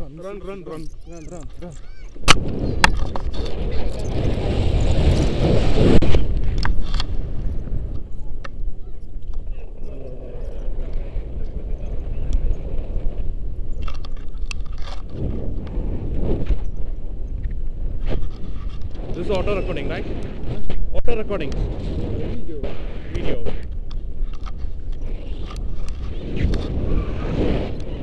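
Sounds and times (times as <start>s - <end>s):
wind rushing over microphone: 0.0s - 28.0s.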